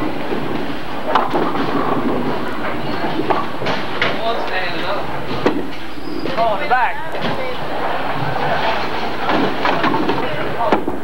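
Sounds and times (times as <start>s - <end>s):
bowling balls rolling: 0.0s - 11.0s.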